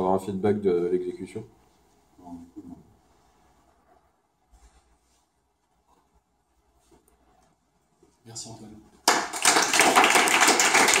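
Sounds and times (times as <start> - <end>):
audience applauding: 9.0 - 11.0.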